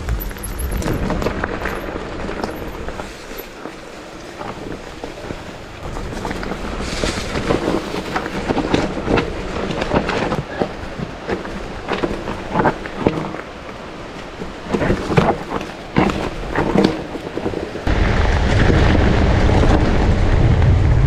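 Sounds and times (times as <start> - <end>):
bike knocking and rattling: 0.0 - 17.9
bike tyres on dirt: 0.0 - 21.0
wind on microphone: 0.0 - 21.0.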